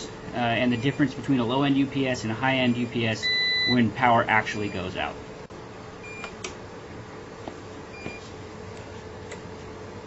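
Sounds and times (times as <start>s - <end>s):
steady hum and fan noise: 0.0s - 10.0s
short high alarm beeps: 2.7s - 3.8s.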